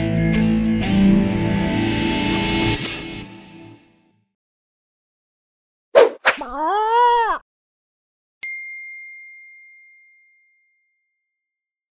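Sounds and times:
high bell-like chime: 0:08.4 - 0:11.4.

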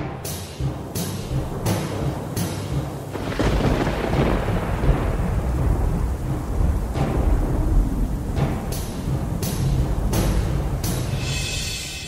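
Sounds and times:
rain-like hiss: 0:00.1 - 0:12.0
thunder rumbling: 0:00.8 - 0:11.3.

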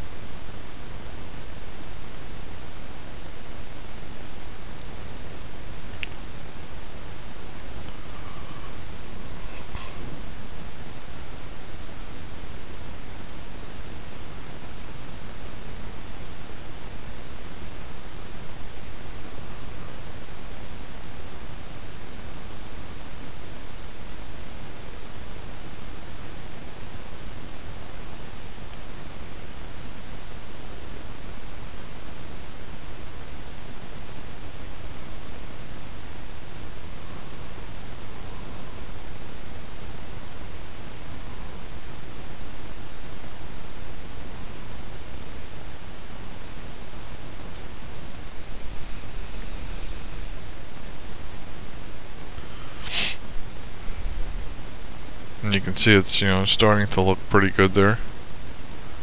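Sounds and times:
microphone static hiss: 0:00.0 - 0:59.0.

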